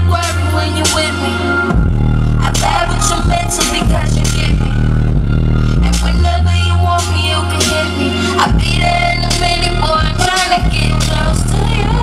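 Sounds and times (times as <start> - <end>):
woman rapping: 0.0 - 1.8, 2.4 - 12.0
hip-hop music with heavy bass: 0.0 - 12.0.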